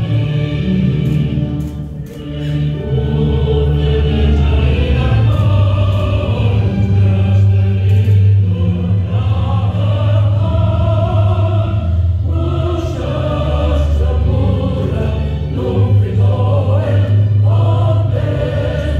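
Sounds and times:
choir singing: 0.0s - 18.9s
low instrumental accompaniment: 0.0s - 18.9s.

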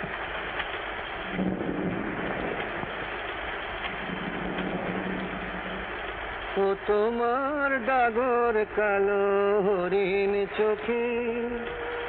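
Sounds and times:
old film soundtrack hiss: 0.0s - 12.0s.

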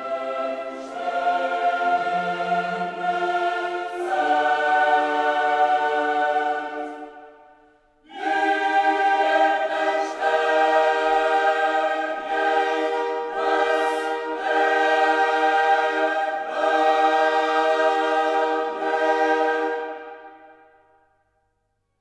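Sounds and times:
choir singing held chords: 0.0s - 21.2s.

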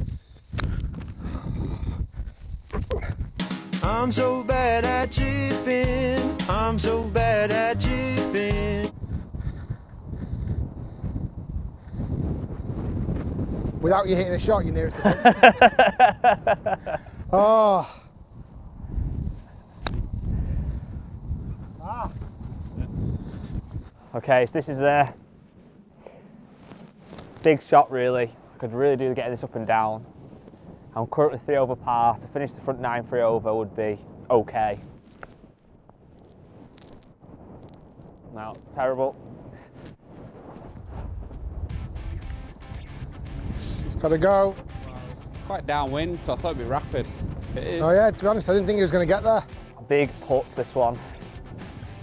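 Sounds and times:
wind noise on microphone: 0.0s - 3.4s, 6.6s - 52.0s
music clip: 3.4s - 9.0s, 41.7s - 52.0s
man exclaiming: 17.3s - 18.0s, 21.8s - 22.2s.

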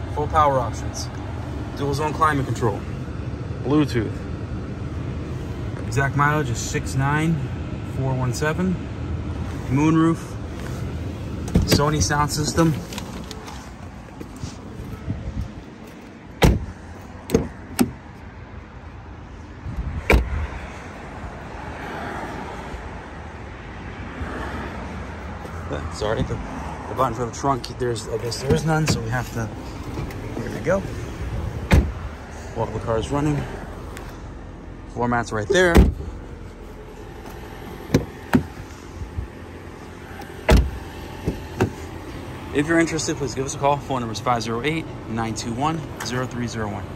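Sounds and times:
heavy thump: 16.4s - 16.7s, 31.6s - 32.0s, 37.8s - 38.6s.

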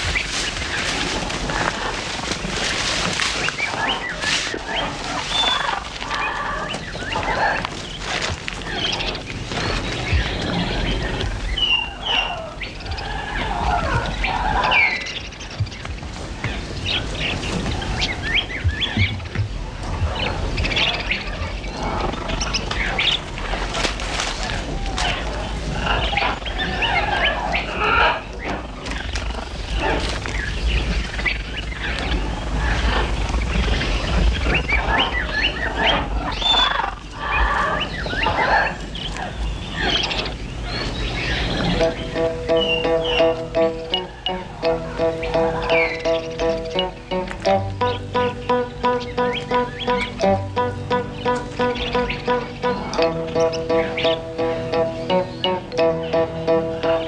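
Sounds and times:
bird chirps: 3.4s - 19.4s, 25.8s - 57.0s
animal cries: 3.7s - 15.2s, 24.5s - 30.2s, 34.4s - 57.0s.

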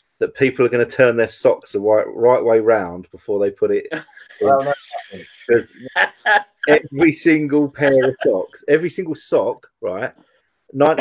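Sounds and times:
faint high-pitched hiss: 0.0s - 11.0s
short bursts of voice: 4.4s - 6.0s, 6.6s - 7.2s, 7.8s - 8.5s
men laughing: 4.4s - 8.6s.

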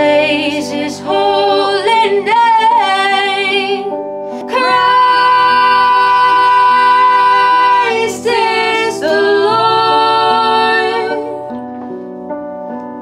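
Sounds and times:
women singing long notes: 4.5s - 11.4s.

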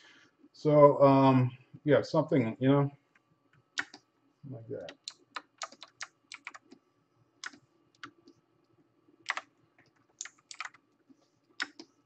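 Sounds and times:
faint steady hum: 0.0s - 12.0s
computer keyboard clicks: 3.8s - 4.0s, 4.8s - 6.8s, 7.4s - 8.2s, 9.2s - 10.8s, 11.6s - 11.9s.

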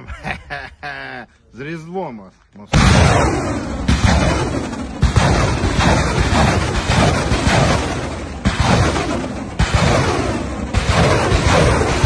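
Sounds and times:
rocket launch roar: 2.7s - 12.0s.

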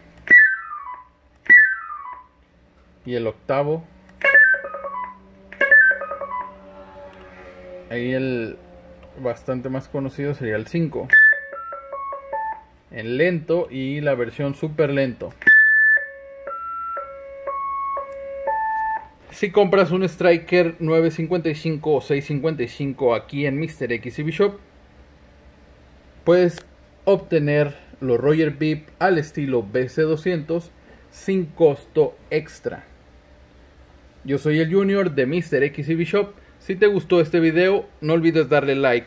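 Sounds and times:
descending radio beeps: 0.3s - 2.3s, 4.2s - 6.7s, 11.1s - 12.7s, 15.4s - 19.1s.

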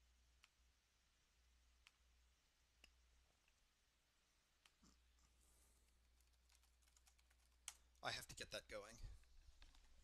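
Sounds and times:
keyboard typing: 6.0s - 7.8s.

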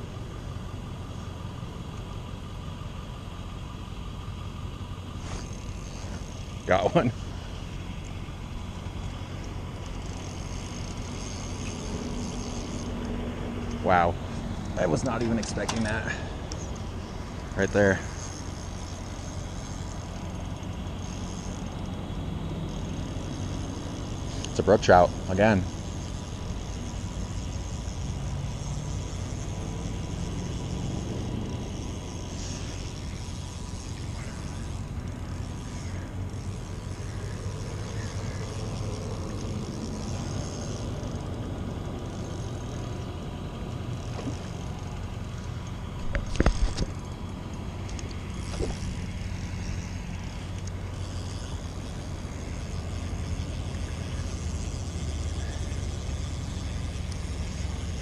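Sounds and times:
low outdoor rumble: 0.0s - 58.0s.

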